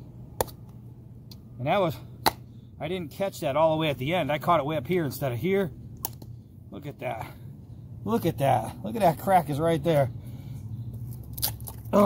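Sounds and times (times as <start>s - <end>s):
low steady hum: 0.0s - 12.0s
wood cracking under knife: 11.3s - 12.0s.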